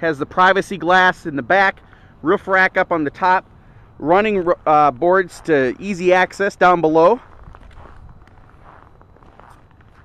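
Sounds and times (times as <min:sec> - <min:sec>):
man speaking: 0:00.0 - 0:07.3
footsteps crunching on snow: 0:04.0 - 0:10.0.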